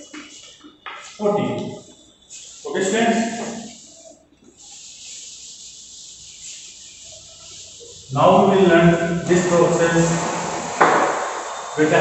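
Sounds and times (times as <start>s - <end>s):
duster rubbing chalk off blackboard: 2.3s - 12.0s.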